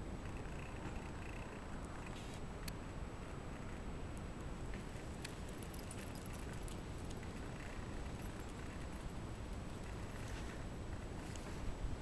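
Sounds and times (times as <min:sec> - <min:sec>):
light clicks and clinks: 0:04.7 - 0:11.7.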